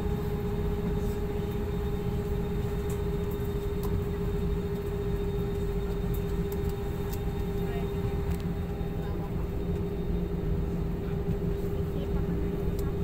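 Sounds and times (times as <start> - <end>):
airliner cabin rumble: 0.0 - 13.0
mid-pitched hum: 0.0 - 13.0.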